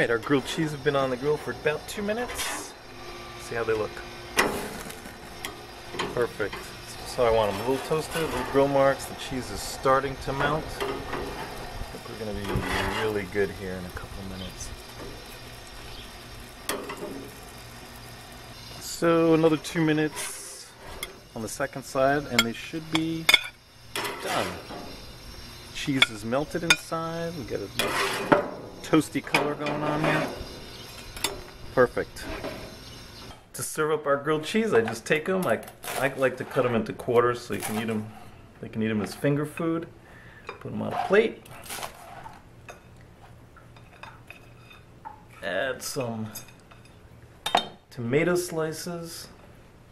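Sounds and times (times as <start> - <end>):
metal spatula scraping grate: 0.0 - 15.3, 18.5 - 33.4, 34.7 - 38.4, 40.8 - 42.4
grill sizzling hiss: 0.0 - 43.4.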